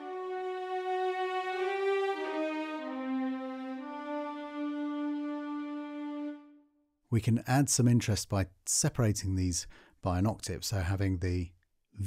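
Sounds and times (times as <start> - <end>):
sustained orchestral chords: 0.0 - 6.7.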